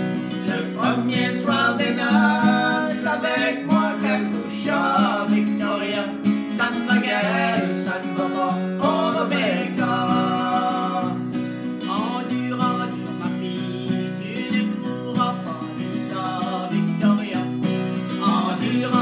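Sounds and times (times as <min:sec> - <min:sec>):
acoustic guitar strumming: 0:00.0 - 0:19.0
man singing: 0:00.3 - 0:19.0
woman singing: 0:00.5 - 0:11.2.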